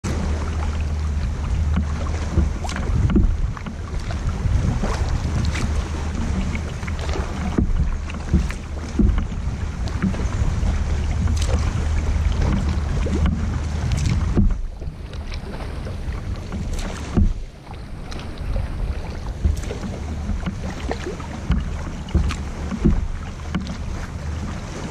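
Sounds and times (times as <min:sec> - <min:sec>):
kayak paddle splashing: 0:00.0 - 0:24.9
wind rumble on microphone: 0:00.0 - 0:24.9.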